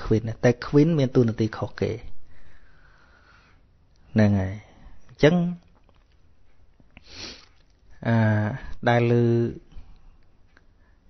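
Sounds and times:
man speaking: 0.0 - 2.2, 4.1 - 5.7, 8.0 - 9.8
man sniffing: 7.0 - 7.6.

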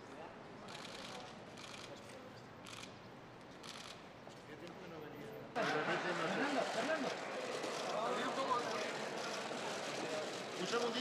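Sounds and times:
background hubbub: 0.0 - 11.0.

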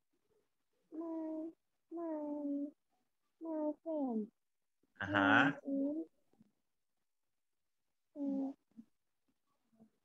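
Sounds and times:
child reading aloud: 0.9 - 2.8, 3.4 - 4.3.

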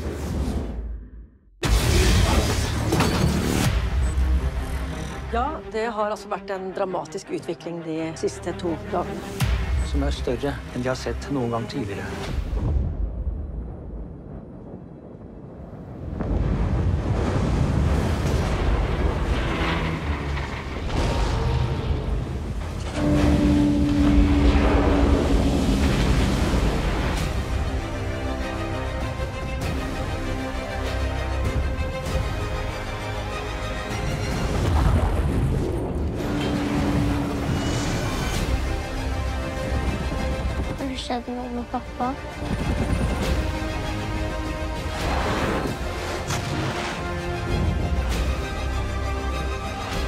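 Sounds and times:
wind: 11.6 - 50.0
heavy sea rushing: 15.1 - 40.9.

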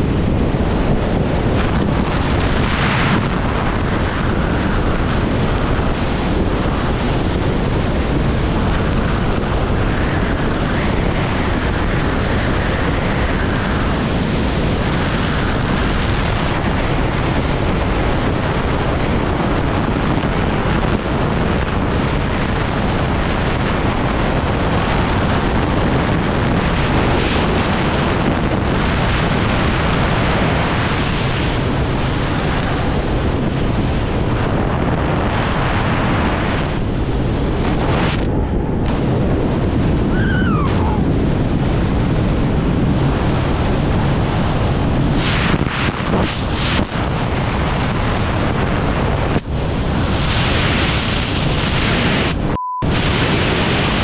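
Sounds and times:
wind rushing over microphone: 0.0 - 54.0.

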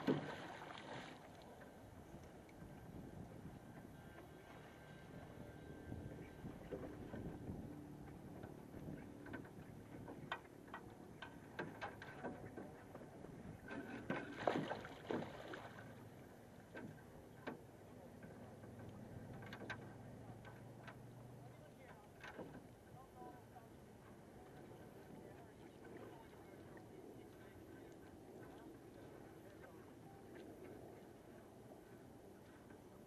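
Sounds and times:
water: 0.0 - 33.0
wind: 0.0 - 33.0.

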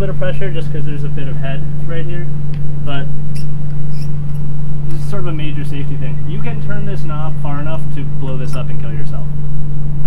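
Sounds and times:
loud low machine hum: 0.0 - 10.0
faint high squeaks: 3.4 - 4.4.

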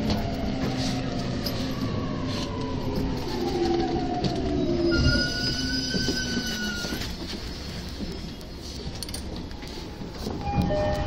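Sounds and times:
high-pitched brake squeal: 4.6 - 7.6.

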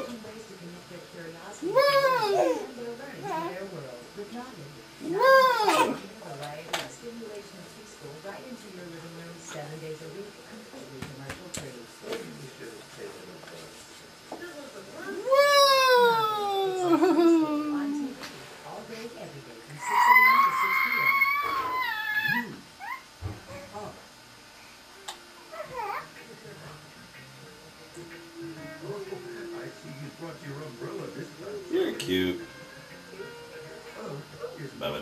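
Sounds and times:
baby squealing: 19.8 - 23.0.

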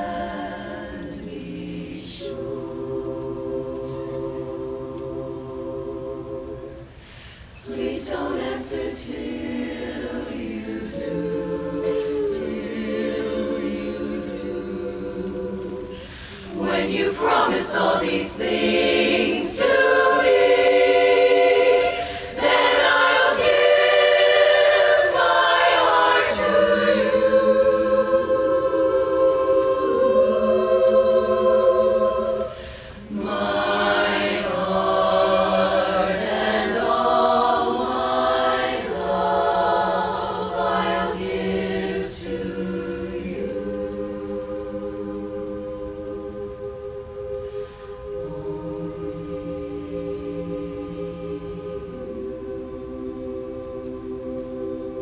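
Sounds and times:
women's chorus singing a cappella: 0.0 - 55.0.

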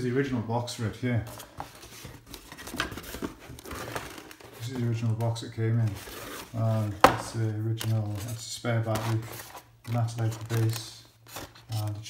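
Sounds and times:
cardboard and packing rustling: 1.0 - 12.0.

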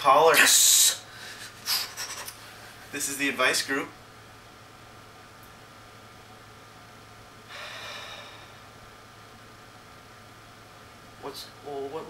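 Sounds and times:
steady low hum: 0.0 - 12.0
person exhaling: 7.5 - 8.7.

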